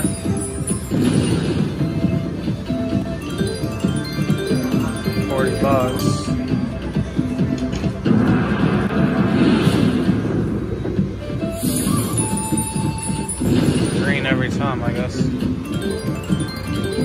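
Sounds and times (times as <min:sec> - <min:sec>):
slot machine reel sounds: 0:00.0 - 0:02.1, 0:02.8 - 0:06.5, 0:11.6 - 0:17.0
slot machine music: 0:00.0 - 0:17.0.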